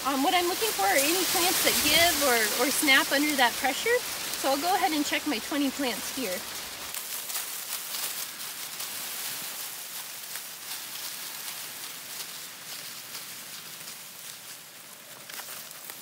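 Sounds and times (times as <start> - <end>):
dry corn plants rustling and crackling: 0.0 - 16.0.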